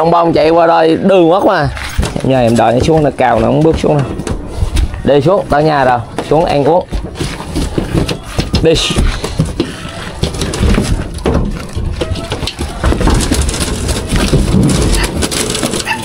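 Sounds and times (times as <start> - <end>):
hooves clattering on metal: 0.7 - 16.0.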